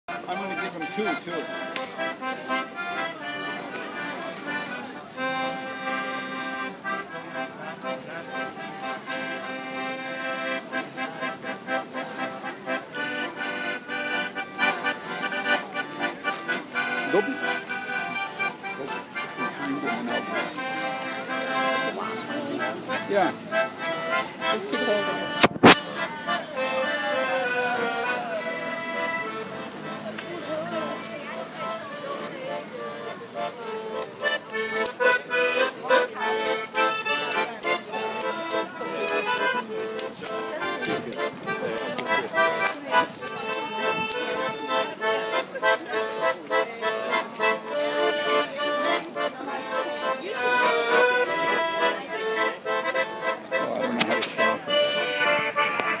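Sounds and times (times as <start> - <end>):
piano accordion playing: 0.0 - 56.0
jingling percussion: 0.3 - 2.3, 4.0 - 5.0, 29.3 - 32.8, 33.5 - 44.7.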